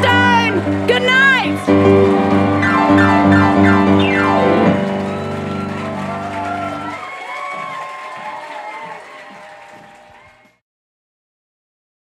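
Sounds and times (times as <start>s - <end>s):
grand piano chord: 0.0s - 6.9s
applause: 0.0s - 10.6s
audience cheering and whooping: 0.0s - 10.6s.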